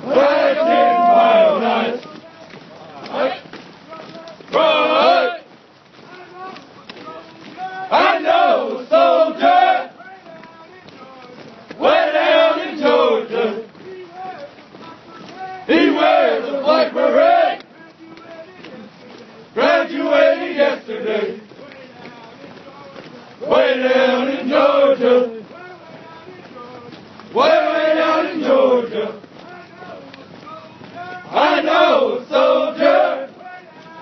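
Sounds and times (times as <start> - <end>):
group chanting in unison: 0.0 - 2.1, 4.5 - 5.4, 7.9 - 10.0, 11.8 - 13.7, 15.7 - 17.6, 19.6 - 21.4, 23.4 - 25.4, 27.4 - 29.2, 31.3 - 33.4
soldiers chanting marching cadence: 0.0 - 34.0.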